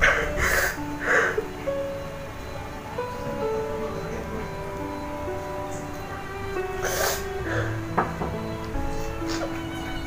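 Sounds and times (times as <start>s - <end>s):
young woman sobbing: 0.0s - 2.0s, 6.6s - 8.0s
slow background music: 0.0s - 10.0s.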